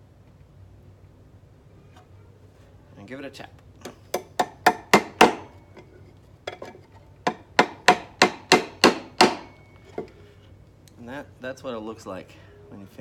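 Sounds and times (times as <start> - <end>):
hammer tapping nail into wood: 4.1 - 5.5, 7.3 - 10.1.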